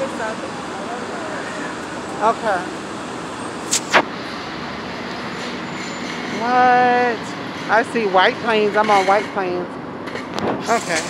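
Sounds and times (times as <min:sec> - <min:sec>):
city street noise: 0:00.0 - 0:11.0.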